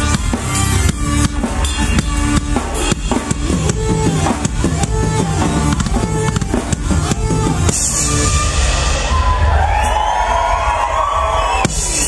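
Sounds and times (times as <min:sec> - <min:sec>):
live rock band playing: 0:00.0 - 0:10.3, 0:11.5 - 0:12.0.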